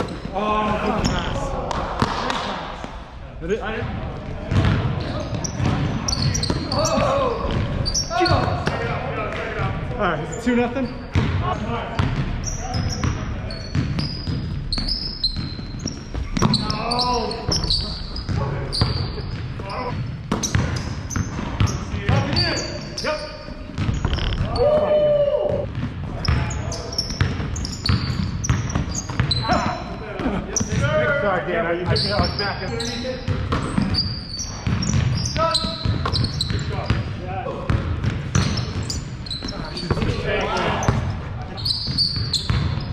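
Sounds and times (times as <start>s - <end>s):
voices echoing in gym: 0.0s - 42.9s
basketball bouncing: 4.5s - 8.8s, 11.1s - 16.8s, 17.5s - 22.4s, 23.7s - 29.7s, 33.3s - 37.1s, 37.7s - 40.2s, 41.8s - 42.9s
sneakers squeaking on court: 4.5s - 8.8s, 10.2s - 11.4s, 12.0s - 24.9s, 25.5s - 30.0s, 30.6s - 30.8s, 31.8s - 42.9s
basketball bouncing on hardwood: 11.1s - 11.4s, 12.0s - 12.3s, 13.7s - 16.6s, 23.7s - 24.6s, 42.2s - 42.8s
players shouting: 24.3s - 25.7s.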